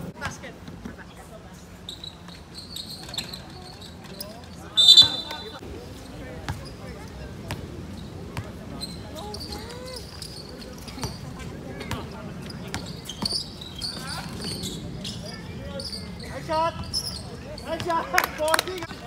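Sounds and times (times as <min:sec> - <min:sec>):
players calling out: 0:04.6 - 0:05.7
referee's whistle blast: 0:04.8 - 0:05.6.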